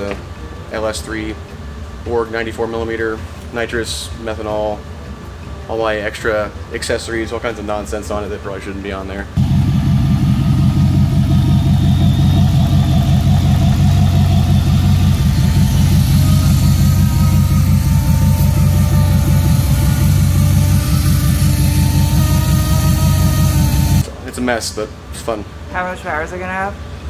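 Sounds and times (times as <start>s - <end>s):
faint engine whine: 9.3s - 24.3s
engine idling loudly: 9.4s - 24.1s.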